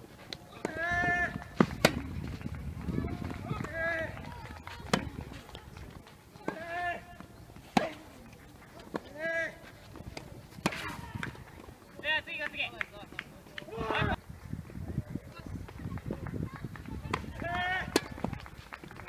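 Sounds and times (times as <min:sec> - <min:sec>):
tennis ball hit by racket: 0:00.3 - 0:05.7, 0:07.6 - 0:08.2, 0:09.9 - 0:11.6, 0:17.1 - 0:18.3
people shouting: 0:00.5 - 0:01.6, 0:02.9 - 0:05.2, 0:06.4 - 0:08.1, 0:17.0 - 0:18.1.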